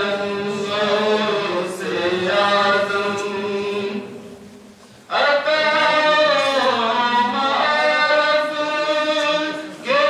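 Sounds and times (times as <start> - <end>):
man singing unaccompanied: 5.1 - 10.0.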